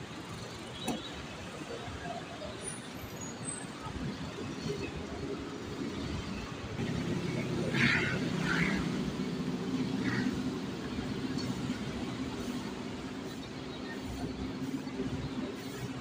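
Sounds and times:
road traffic din: 0.0s - 16.0s.

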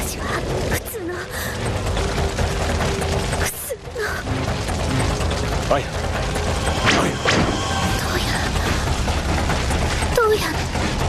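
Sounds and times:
fire crackling: 0.0s - 11.0s
low rumble: 0.0s - 11.0s.

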